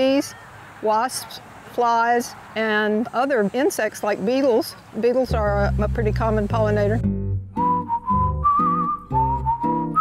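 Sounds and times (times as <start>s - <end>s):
plucked acoustic guitar chords: 5.3s - 10.0s
whistled melody: 7.5s - 10.0s.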